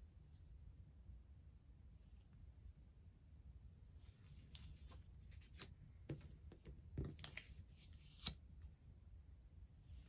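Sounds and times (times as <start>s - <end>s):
cards slapping and sliding on table: 4.2s - 8.4s.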